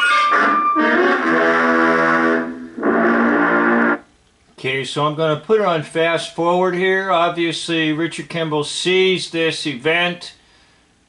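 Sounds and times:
horn-like chords: 0.0 - 4.1.

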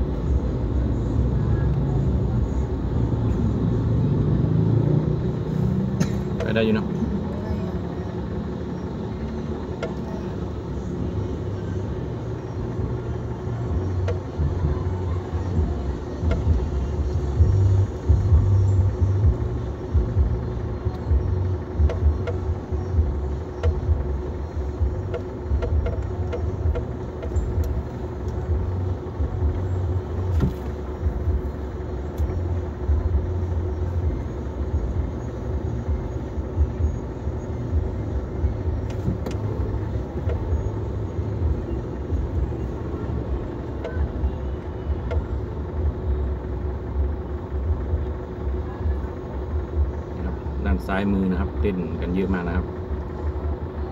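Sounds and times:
car engine and road rumble: 0.0 - 53.9.

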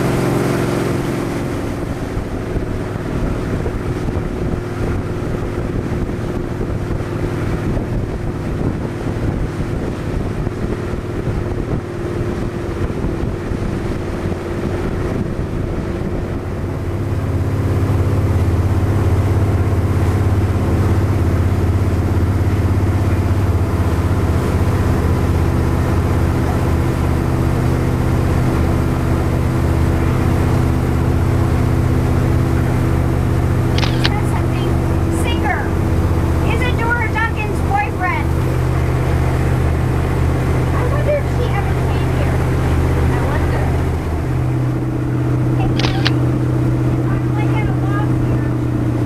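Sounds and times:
motorboat engine humming: 0.0 - 49.0
wind buffeting microphone: 0.0 - 49.0.

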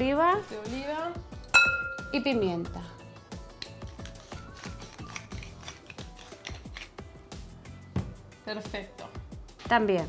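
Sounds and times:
background music: 0.0 - 10.0
pepper mill grinding: 3.5 - 7.1.

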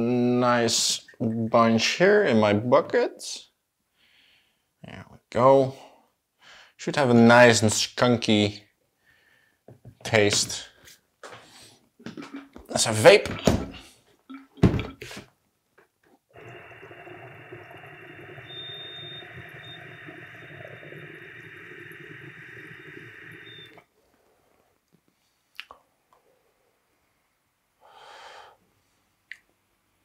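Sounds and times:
water pipe bubbling: 16.3 - 23.8
person exhaling: 27.8 - 28.6.

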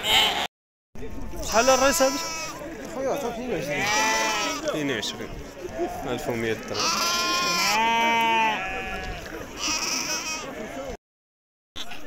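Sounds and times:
sheep bleating: 0.0 - 0.5, 1.4 - 2.7, 3.6 - 4.8, 5.9 - 10.7, 11.8 - 12.0
people's voices: 1.0 - 11.0.

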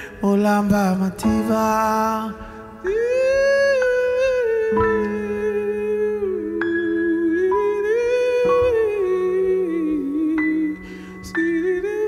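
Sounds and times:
grand piano chords: 0.0 - 12.0
man humming a melody: 0.2 - 12.0.

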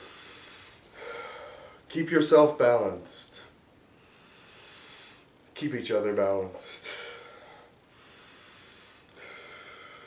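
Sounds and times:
man breathing in: 0.0 - 1.9, 3.9 - 5.4, 6.8 - 10.0.

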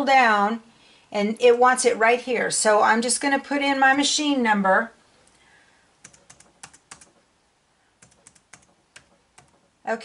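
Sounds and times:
laptop keys tapping: 6.0 - 7.3, 8.0 - 9.7.

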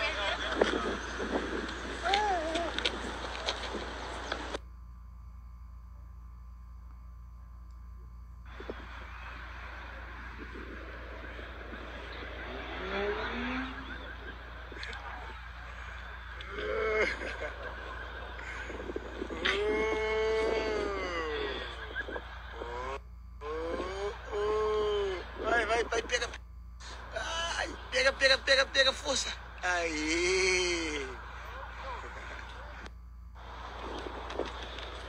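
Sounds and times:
adults talking: 0.0 - 4.6, 8.5 - 32.9
outdoor background noise: 0.0 - 35.0.

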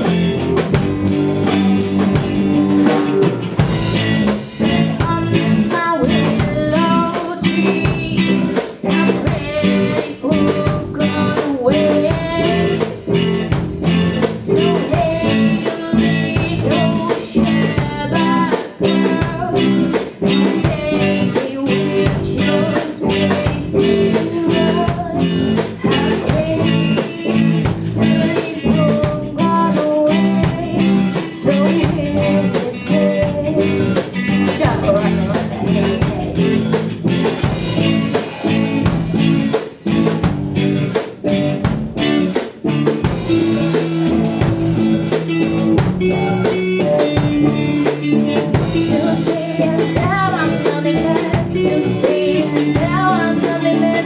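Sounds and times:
drum kit beat: 0.0 - 54.0
electric guitar: 0.0 - 54.0
person singing: 4.5 - 37.2, 43.4 - 54.0.

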